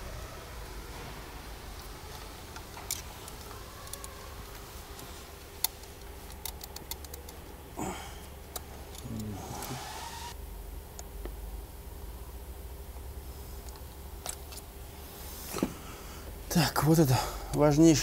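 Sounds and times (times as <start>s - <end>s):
low workshop hum: 0.0s - 18.0s.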